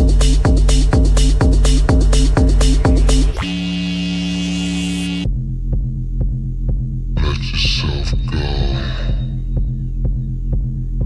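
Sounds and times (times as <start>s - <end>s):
steady kick drum: 0.0s - 3.4s, 5.2s - 11.0s
deep house dance music: 0.0s - 11.0s
deep sustained bass drone: 0.0s - 11.0s.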